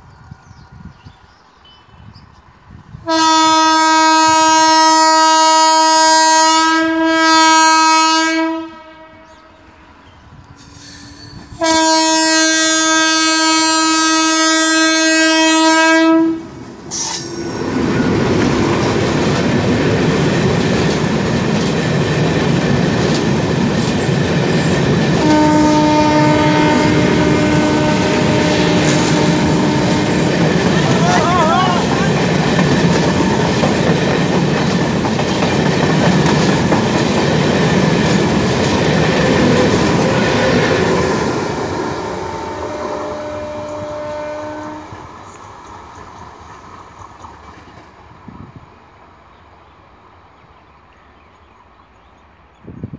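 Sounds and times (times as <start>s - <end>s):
train rumble and wheel clatter: 0.0s - 52.9s
train horn blasts: 3.0s - 10.0s, 11.3s - 18.1s, 25.1s - 32.2s, 39.3s - 45.4s.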